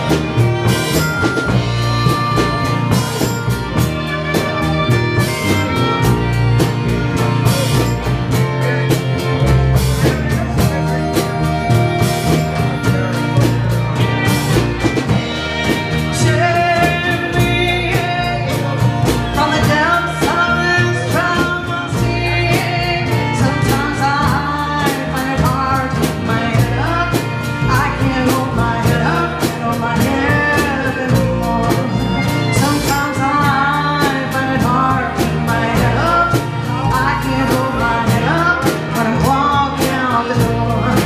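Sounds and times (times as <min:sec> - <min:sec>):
blues-rock band playing: 0:00.0 - 0:41.0
harmonica: 0:00.0 - 0:41.0.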